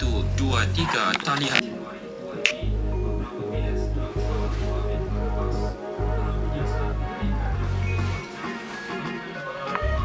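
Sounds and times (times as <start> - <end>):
music with deep bass line: 0.0 - 0.9, 2.5 - 8.3
finger snap: 2.4 - 2.7, 9.0 - 10.0.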